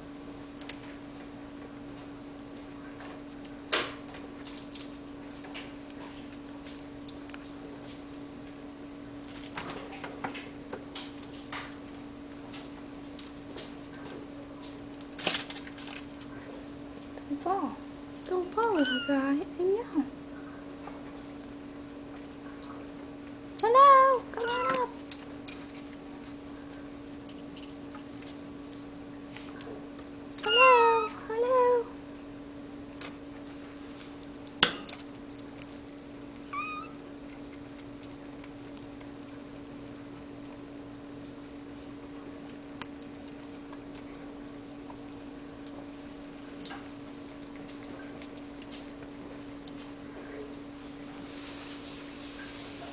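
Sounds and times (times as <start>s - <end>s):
steady hum: 0.0s - 52.9s
cat meowing: 18.8s - 19.2s, 24.4s - 24.9s, 30.4s - 31.2s, 36.5s - 37.0s.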